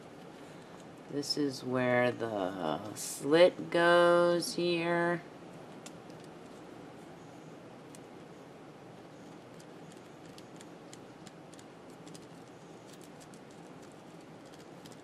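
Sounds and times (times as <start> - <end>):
steady low hiss: 0.0 - 15.0.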